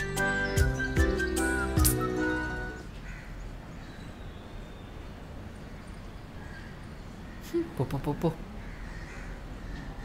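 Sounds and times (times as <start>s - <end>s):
crows cawing: 2.9s - 3.5s, 5.7s - 10.0s.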